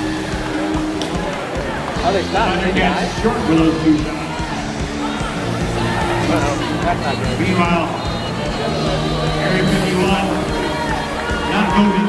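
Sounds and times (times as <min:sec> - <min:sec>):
music over loudspeakers: 0:00.0 - 0:12.0.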